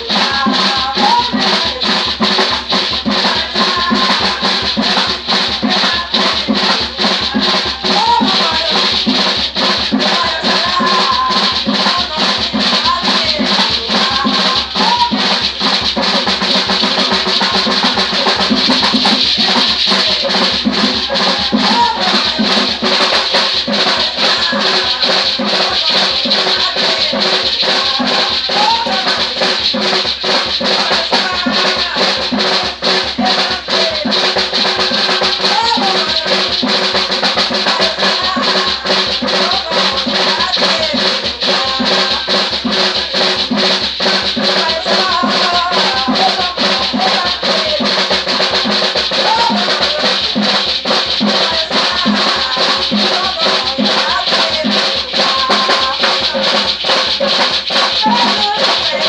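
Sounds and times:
hand drum beating: 0.0 - 59.0
voices singing: 0.0 - 59.0
gourd rattles shaking: 50.7 - 59.0.

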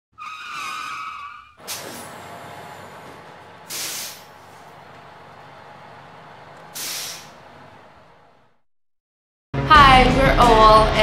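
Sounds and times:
bus brakes squealing: 0.2 - 8.2
bus running noise: 1.2 - 8.6
air brake hiss: 1.6 - 3.0, 3.6 - 4.7, 6.6 - 7.5.

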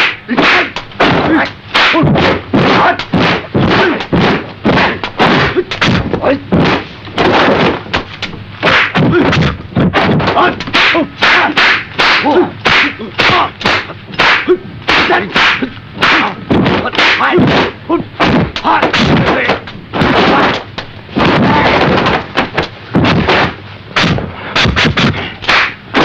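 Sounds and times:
whip-like swishes of strikes: 0.0 - 19.4, 23.0 - 26.0.

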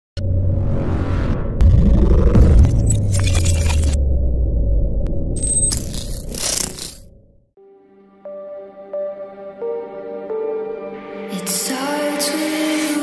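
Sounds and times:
low rumble with pitch swoop: 0.2 - 5.7.

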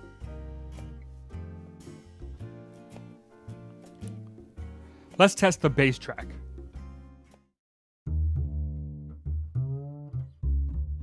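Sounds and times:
plucked bass line: 8.1 - 11.0.

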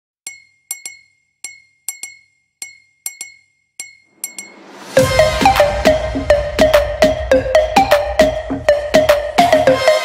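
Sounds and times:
glass clinks ringing: 0.3 - 4.6.

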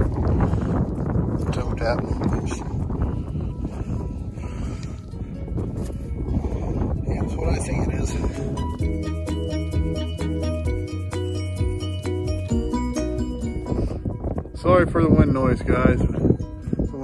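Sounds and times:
wind buffeting microphone: 0.0 - 17.0
light background music: 1.6 - 17.0.

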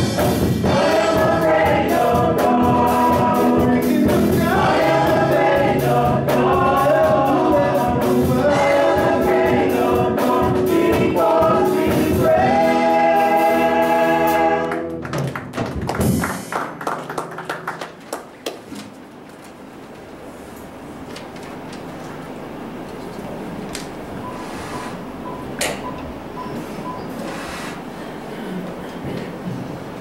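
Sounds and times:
group singing gospel song: 0.0 - 15.0
live band accompaniment: 0.0 - 18.4.

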